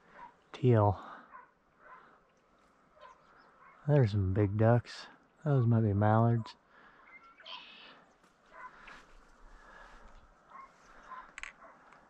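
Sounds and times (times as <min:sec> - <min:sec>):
distant ducks and geese calling: 0:00.0 - 0:04.1.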